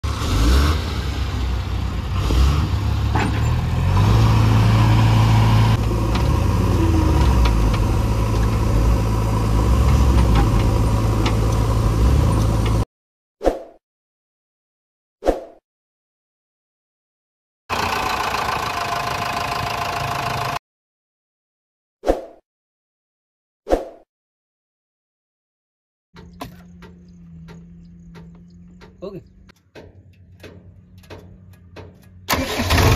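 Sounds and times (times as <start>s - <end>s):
heavy diesel engines running: 0.0s - 12.8s, 17.7s - 20.6s, 26.2s - 32.9s.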